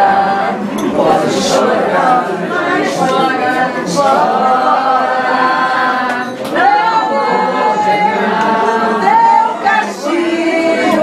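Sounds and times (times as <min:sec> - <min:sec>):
group of people singing: 0:00.0 - 0:11.0.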